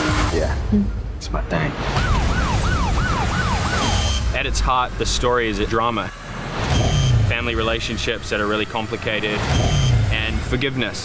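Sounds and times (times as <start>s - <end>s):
police siren wailing: 2.0s - 4.4s.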